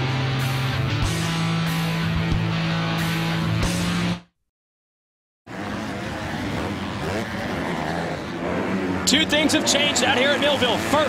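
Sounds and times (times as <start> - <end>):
motocross bike engines revving: 5.5 - 11.0
track noise: 5.5 - 11.0.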